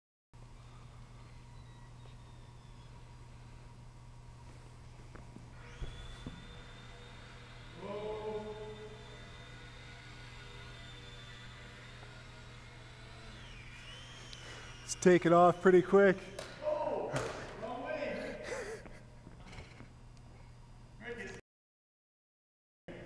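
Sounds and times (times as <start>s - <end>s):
steady low hum: 0.4s - 21.4s
electric model plane motor whine: 0.6s - 3.8s, 4.6s - 16.6s.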